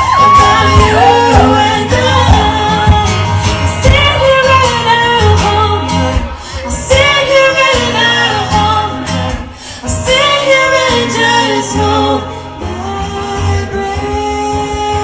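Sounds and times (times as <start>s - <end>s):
guitar: 0.0s - 15.0s
woman singing lead: 0.0s - 15.0s.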